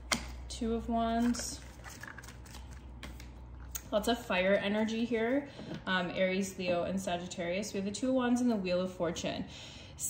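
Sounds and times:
cards being shuffled: 0:01.1 - 0:03.8.

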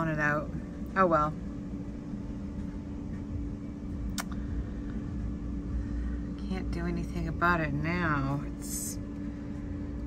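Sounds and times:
faint constant tone: 0:00.0 - 0:10.0
low background hum: 0:00.0 - 0:10.0.

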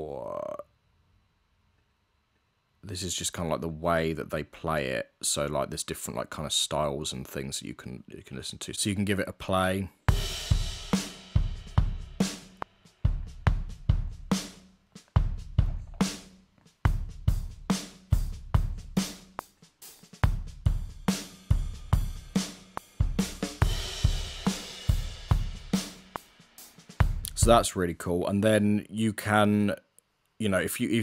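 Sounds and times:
rock drum beat: 0:10.0 - 0:27.7.

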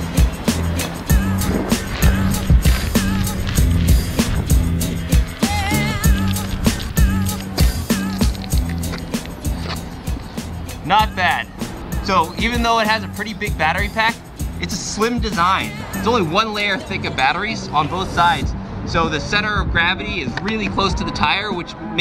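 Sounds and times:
background music with steady beat: 0:00.0 - 0:22.0.

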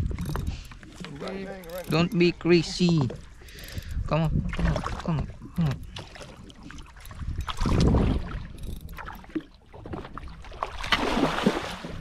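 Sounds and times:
water splashing against a boat: 0:00.0 - 0:12.0
fish thrashing at the surface: 0:05.9 - 0:12.0.

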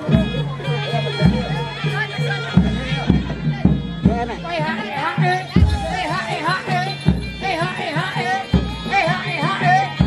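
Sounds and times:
low drum beats: 0:00.0 - 0:10.0.

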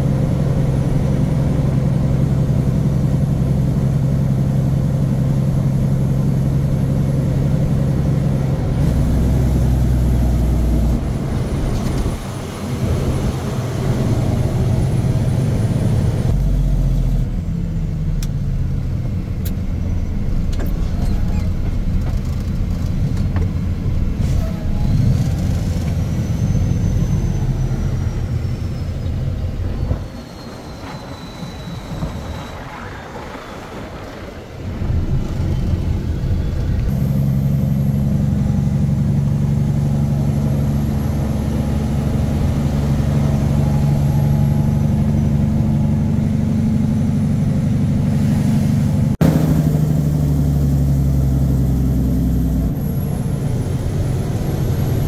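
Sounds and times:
diesel truck engine humming: 0:00.0 - 0:55.0.

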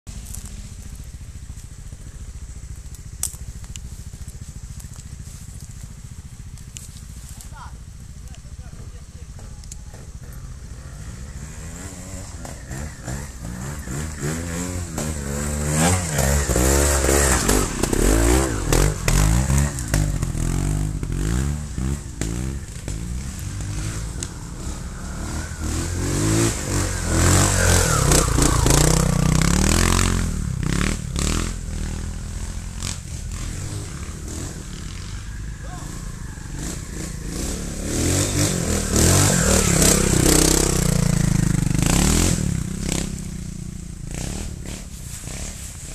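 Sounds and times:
motorcycle engine idling and revving: 0:00.1 - 0:45.9.

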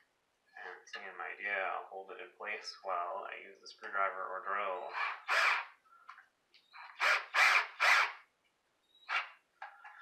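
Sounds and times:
cordless drill driving screw into wood: 0:04.9 - 0:05.8, 0:06.6 - 0:08.3, 0:09.0 - 0:09.4.

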